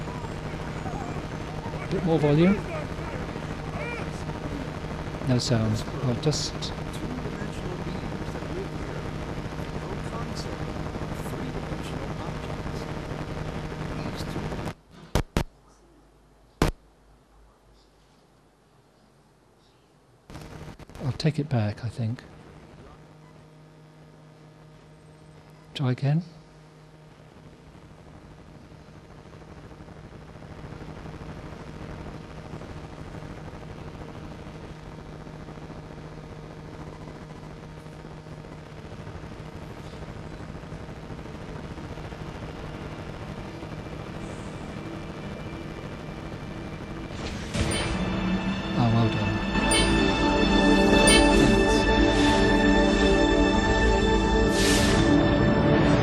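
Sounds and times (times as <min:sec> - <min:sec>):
loud crackling over speakers: 0:00.0 - 0:15.6, 0:16.6 - 0:17.2, 0:20.2 - 0:56.0.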